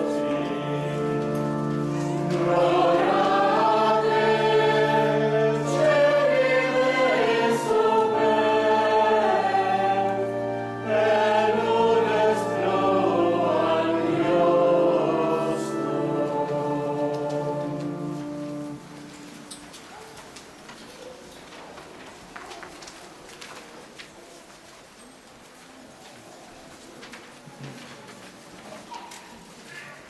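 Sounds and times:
church choir singing: 0:00.0 - 0:19.8.

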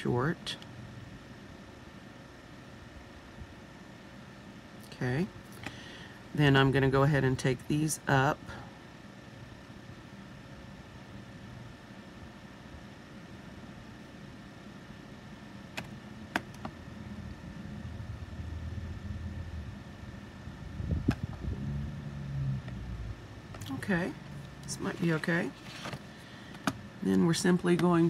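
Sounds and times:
faint background hum: 0:00.0 - 0:28.0
low rumbling: 0:17.1 - 0:24.9.

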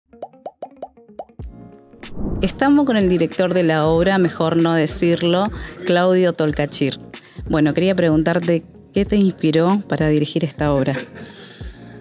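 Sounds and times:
low thump: 0:02.0 - 0:02.6.

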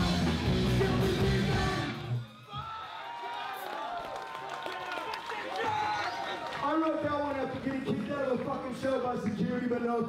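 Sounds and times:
punk band playing live: 0:00.0 - 0:02.2.

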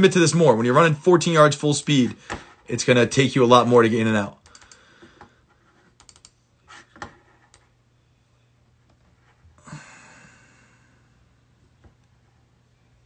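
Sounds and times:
computer keyboard clicks: 0:04.4 - 0:04.8, 0:06.0 - 0:06.4.

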